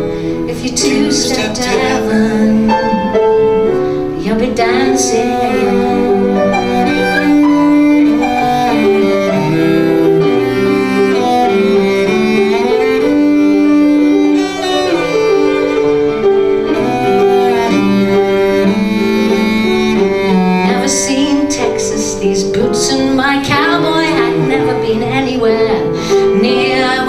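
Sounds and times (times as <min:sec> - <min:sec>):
cello bowed melody: 0:00.0 - 0:27.0
piano accompaniment: 0:00.0 - 0:27.0.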